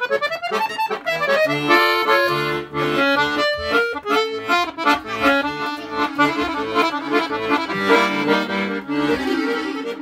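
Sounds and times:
piano accordion melody: 0:00.0 - 0:10.0.

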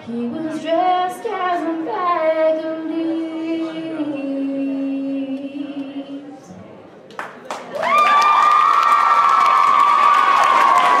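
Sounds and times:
audience applauding and cheering: 0:07.4 - 0:11.0
high-pitched whoop: 0:07.8 - 0:11.0.

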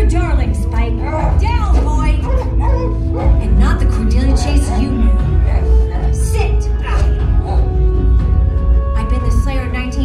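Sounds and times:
low droning music: 0:00.0 - 0:10.0
dog barking and whimpering: 0:01.0 - 0:06.2.

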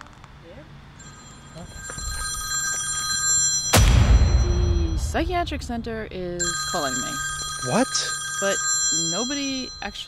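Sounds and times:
smartphone ringtone: 0:01.0 - 0:05.1, 0:06.4 - 0:10.0
loud boom with rumble: 0:03.8 - 0:06.3.

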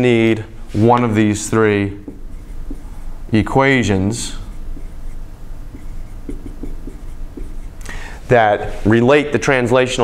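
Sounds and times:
marker writing on a whiteboard: 0:00.0 - 0:08.9.

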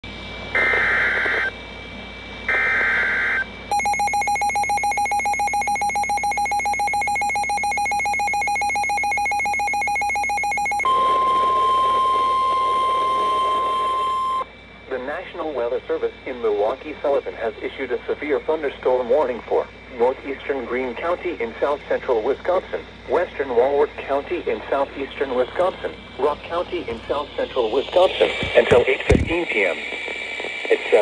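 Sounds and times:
screechy data bursts: 0:00.5 - 0:01.5, 0:02.5 - 0:14.5
pulsing harsh attention tone: 0:02.5 - 0:14.5.

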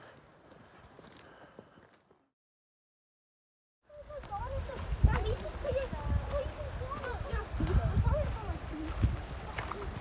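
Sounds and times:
footsteps on gravel: 0:04.0 - 0:10.0.

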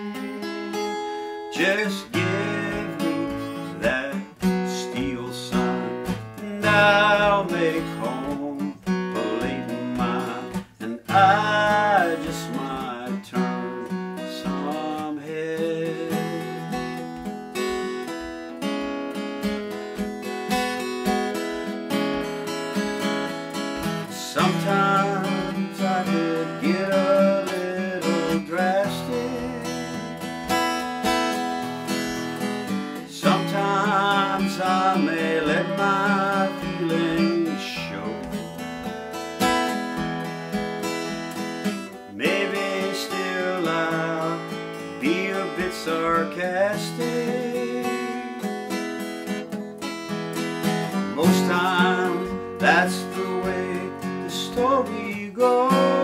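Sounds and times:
acoustic guitar picked and strummed: 0:00.0 - 0:56.0.

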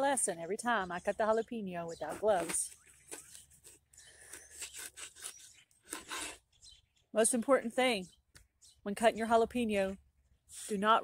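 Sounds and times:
faint crackles and scrapes: 0:01.9 - 0:06.8, 0:09.8 - 0:11.0.

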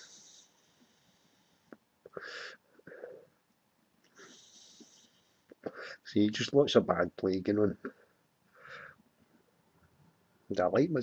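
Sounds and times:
man breathing: 0:00.0 - 0:03.3, 0:04.1 - 0:06.1, 0:08.0 - 0:09.1.

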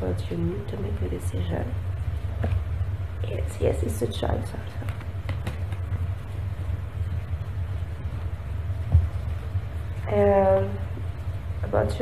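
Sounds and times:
low background rumble: 0:00.0 - 0:12.0
cards clicking: 0:04.8 - 0:05.9.

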